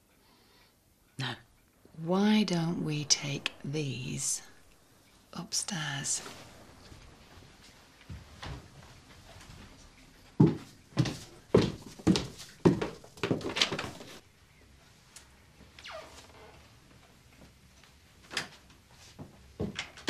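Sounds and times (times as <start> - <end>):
footsteps climbing stairs: 8.1 - 14.2.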